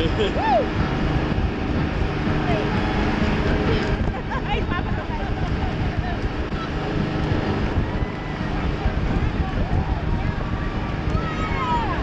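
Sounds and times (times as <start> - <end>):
rushing water: 0.0 - 12.0
speedboat engine drone: 0.0 - 12.0
wind buffeting microphone: 0.0 - 12.0.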